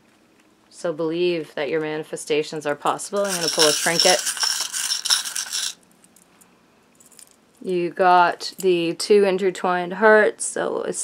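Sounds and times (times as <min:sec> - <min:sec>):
metal charms jingling in bowl: 0:03.1 - 0:05.8.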